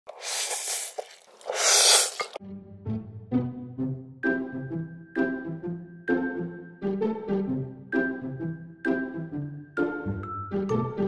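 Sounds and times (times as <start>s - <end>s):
noodle slurping: 0.0s - 2.4s.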